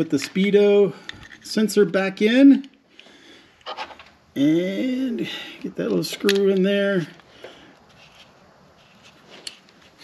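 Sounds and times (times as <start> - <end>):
fingers handling small parts: 0.0 - 1.6, 5.6 - 10.0.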